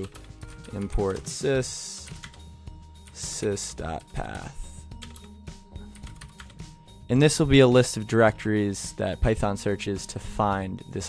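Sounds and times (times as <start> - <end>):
computer keyboard keys clicking: 2.0 - 2.4, 5.9 - 6.6.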